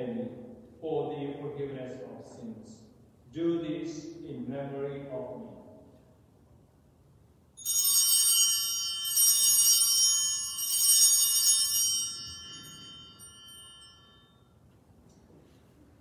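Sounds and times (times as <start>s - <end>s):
altar bells ringing: 7.6s - 14.7s.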